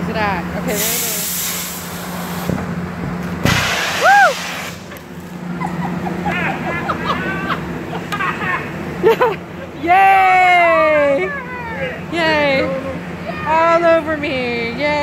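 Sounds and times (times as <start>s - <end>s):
air and water bursting from pipe: 3.4s - 4.9s
people laughing: 5.5s - 9.8s.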